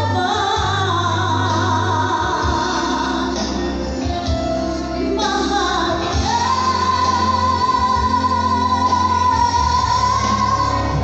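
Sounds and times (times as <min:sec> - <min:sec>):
backing music: 0:00.0 - 0:11.0
woman singing into a microphone: 0:00.0 - 0:11.0.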